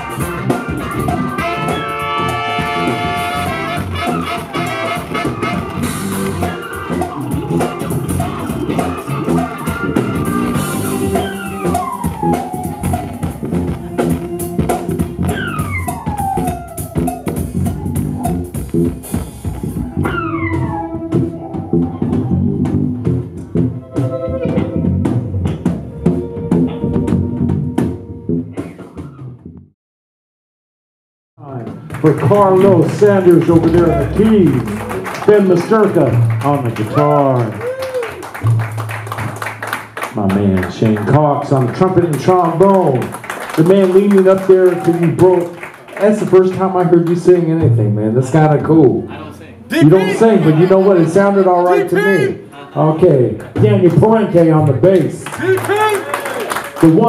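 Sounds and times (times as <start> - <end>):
electric guitar: 0.0 - 29.4, 31.7 - 42.3
drum kit: 0.0 - 29.6, 31.5 - 48.7
bass guitar: 0.0 - 29.7, 31.4 - 57.0
electric keyboard: 20.0 - 29.0.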